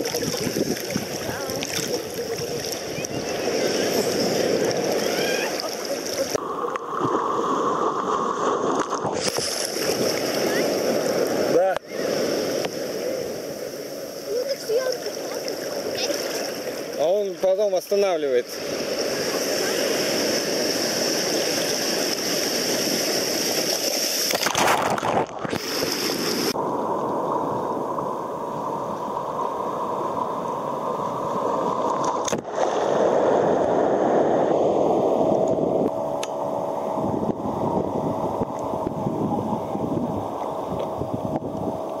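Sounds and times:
sea water sloshing: 0.0 - 13.6, 14.3 - 17.0
wave breaking: 0.0 - 17.6, 18.4 - 42.0.

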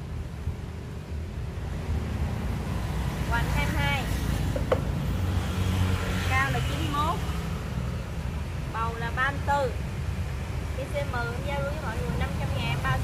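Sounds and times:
vehicle engine rumbling: 0.0 - 7.2.

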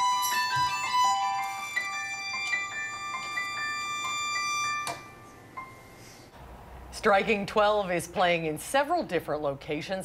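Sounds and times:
keyboard melody: 0.0 - 5.9.

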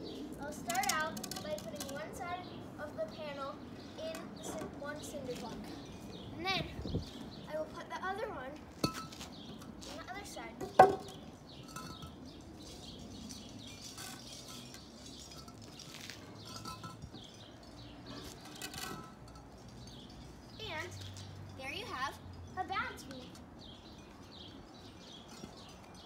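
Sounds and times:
wooden beam knock: 10.6 - 11.1.

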